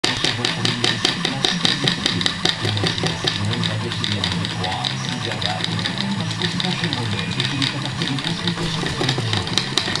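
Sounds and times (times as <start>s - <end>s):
small electric motors running: 0.1s - 10.0s
person talking: 0.2s - 10.0s.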